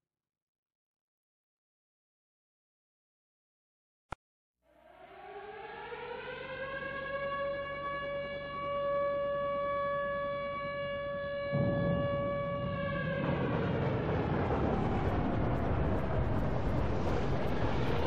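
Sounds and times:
air-raid siren wailing: 4.7 - 18.0
rushing noise: 11.6 - 18.0.

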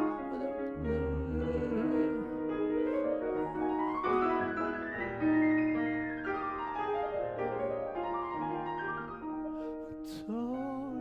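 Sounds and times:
grand piano playing classical music: 0.0 - 11.0.

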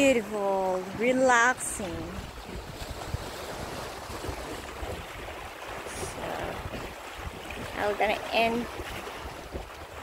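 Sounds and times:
waves lapping against rocks: 0.0 - 10.0
wind rumbling on microphone: 0.0 - 10.0.

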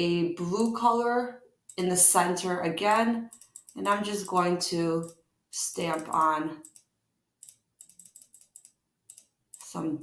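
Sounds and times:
computer mouse clicks: 2.9 - 4.4, 5.0 - 5.2, 5.8 - 9.8.

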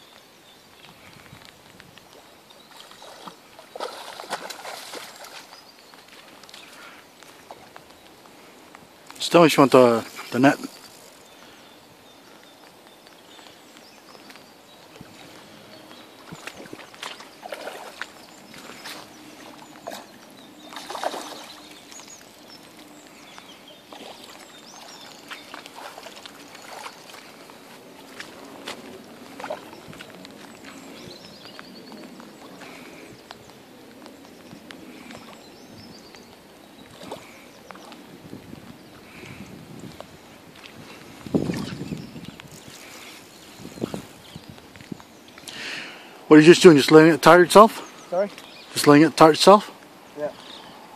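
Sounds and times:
light rain on water: 0.0 - 50.9
fish splashing at the surface: 2.7 - 6.5, 16.2 - 22.2.

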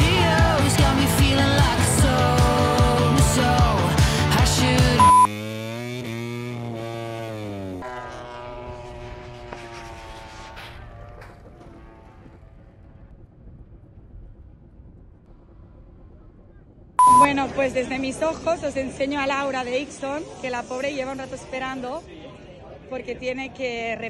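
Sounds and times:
racing motorcycle engine revving: 0.0 - 13.1.

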